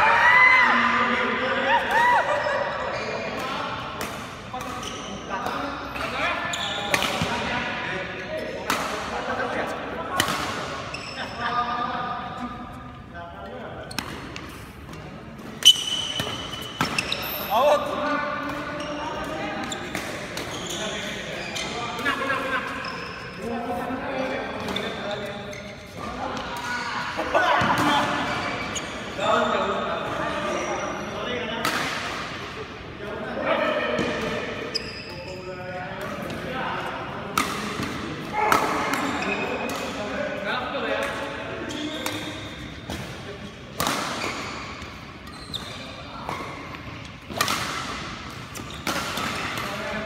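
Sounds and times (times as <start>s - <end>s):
shoe squeak: 2.5s - 3.4s, 4.8s - 5.2s, 6.3s - 7.2s, 10.8s - 11.5s, 15.6s - 17.7s, 18.7s - 22.0s, 22.7s - 23.5s, 24.7s - 26.1s, 28.2s - 29.7s, 34.6s - 35.5s, 39.0s - 39.6s, 41.6s - 42.9s, 44.2s - 46.7s, 48.6s - 48.9s
racket hitting shuttlecock: 43.8s - 45.1s, 46.2s - 49.8s.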